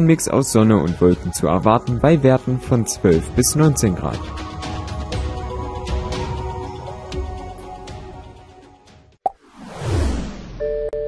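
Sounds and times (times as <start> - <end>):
background music: 0.0 - 9.2
whoosh transition effect: 9.4 - 10.6.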